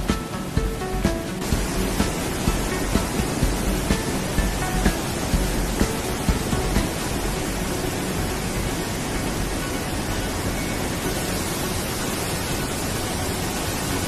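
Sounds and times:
fast-flowing water rushing: 0.0 - 14.0.

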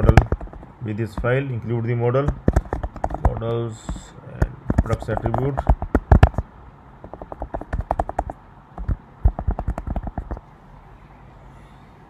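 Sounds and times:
computer keyboard typing: 0.0 - 1.4, 2.3 - 6.4, 7.0 - 10.4.

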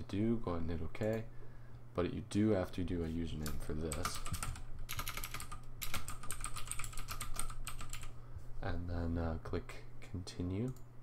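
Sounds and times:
keyboard typing: 3.4 - 8.1.

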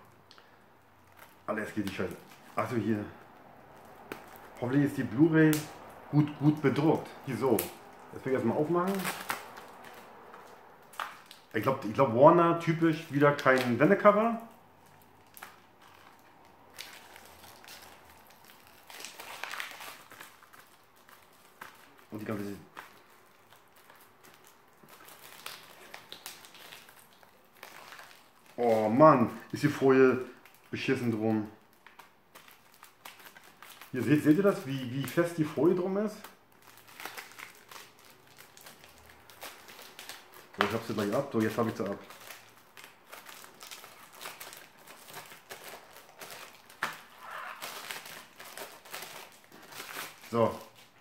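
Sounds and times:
plastic wrap crinkling: 0.0 - 51.0.

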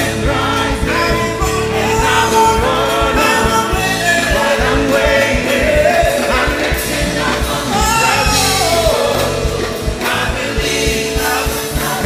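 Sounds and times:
gospel choir singing: 0.0 - 12.0
lead vocalist singing: 0.0 - 12.0
live church band: 0.0 - 12.0
steady drum beat: 0.0 - 12.0.

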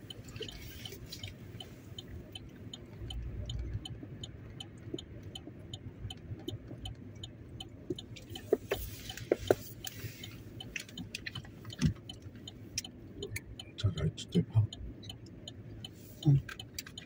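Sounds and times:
car engine idling hum: 0.0 - 17.0
turn signal ticking: 0.0 - 17.0.

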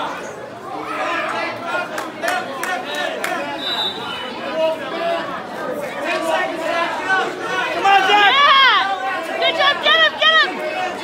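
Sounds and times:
chatter of spectators: 0.0 - 11.0.

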